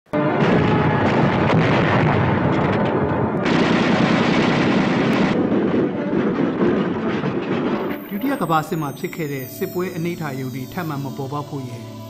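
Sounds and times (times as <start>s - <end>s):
explosions: 0.2s - 10.3s
rapid gunfire: 0.4s - 8.0s.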